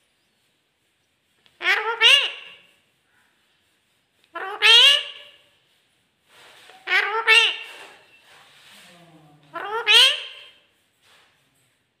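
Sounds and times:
parakeet raspy call: 0:01.6 - 0:02.7, 0:04.3 - 0:05.4, 0:06.8 - 0:08.0, 0:09.5 - 0:10.6.

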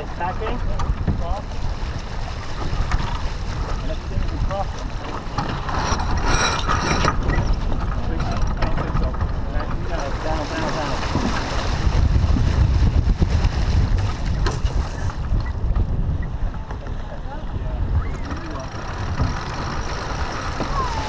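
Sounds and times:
water rushing along hull: 0:00.0 - 0:21.0
wind buffeting microphone: 0:00.0 - 0:21.0
faint crew voices: 0:16.5 - 0:21.0.

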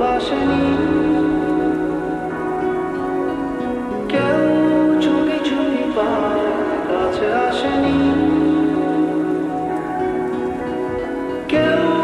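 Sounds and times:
lofi music with sustained chord: 0:00.0 - 0:12.0
rain-like patter: 0:00.0 - 0:12.0.

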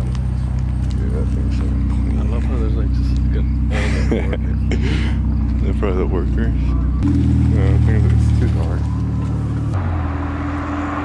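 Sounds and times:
car engine idling: 0:00.0 - 0:10.2
people talking: 0:00.9 - 0:09.1.

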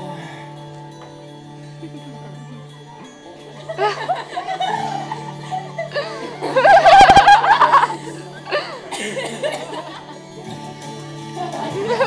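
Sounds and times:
background music: 0:00.0 - 0:12.0
audience laughing: 0:03.5 - 0:10.5, 0:11.4 - 0:12.0
person laughing loudly: 0:03.7 - 0:10.2.

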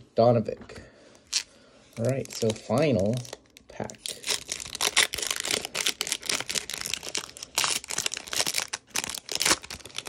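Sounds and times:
plastic wrapper tearing and crinkling: 0:01.2 - 0:10.0.

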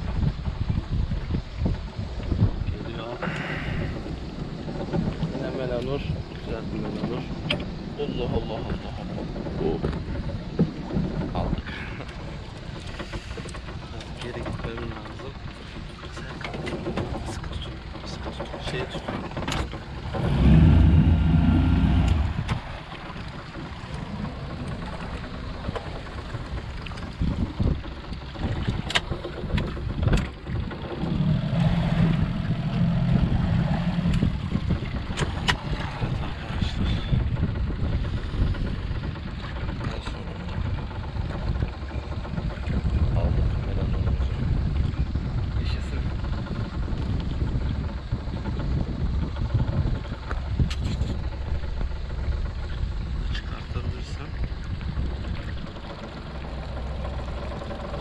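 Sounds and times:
low rumble: 0:00.0 - 0:58.0
wind buffeting microphone: 0:00.0 - 0:58.0.

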